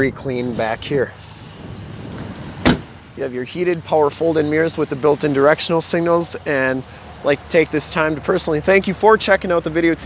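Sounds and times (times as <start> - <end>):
truck door slamming: 1.4 - 3.2.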